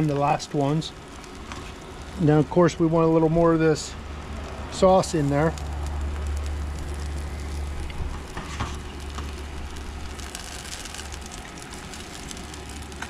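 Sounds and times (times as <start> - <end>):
tortilla sizzling in hot oil: 0.0 - 13.0.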